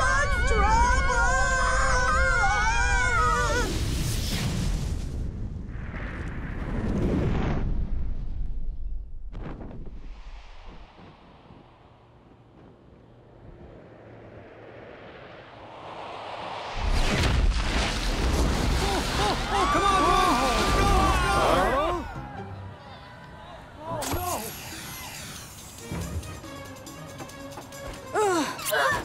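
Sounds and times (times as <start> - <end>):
loud crash: 16.7 - 21.3.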